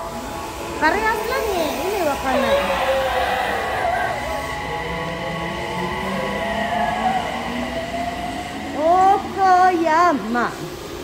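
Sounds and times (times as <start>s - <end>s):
electric train motor whine: 0.0s - 11.0s.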